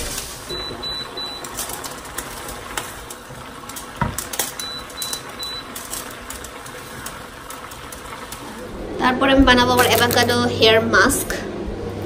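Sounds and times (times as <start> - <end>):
food sizzling in a frying pan: 0.0 - 8.7.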